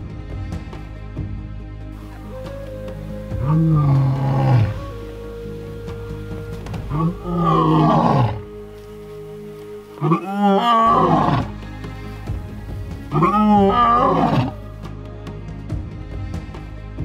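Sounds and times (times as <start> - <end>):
music: 0.0 - 17.0
lion roaring: 3.4 - 5.0, 6.9 - 8.6, 10.0 - 11.6, 13.1 - 14.6.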